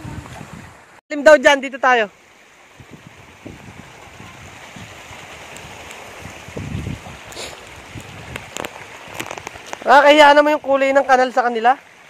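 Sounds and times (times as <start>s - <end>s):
person speaking: 1.1s - 2.1s, 9.8s - 11.8s
water trickling over gravel: 2.2s - 12.0s.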